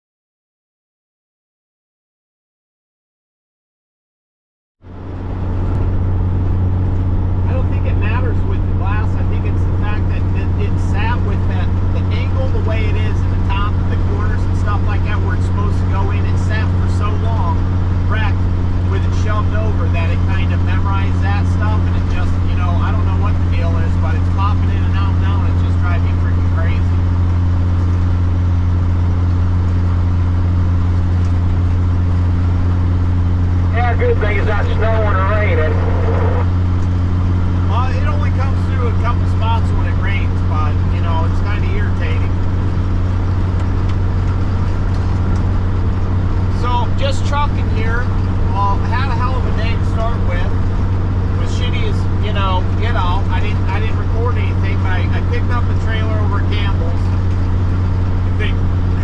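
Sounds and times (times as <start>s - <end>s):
truck engine drone: 4.8s - 59.0s
faint voices: 33.6s - 36.6s.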